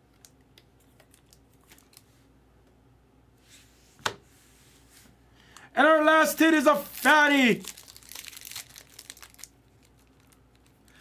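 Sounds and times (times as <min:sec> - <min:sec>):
foil wrapper crinkling: 0:06.9 - 0:11.0.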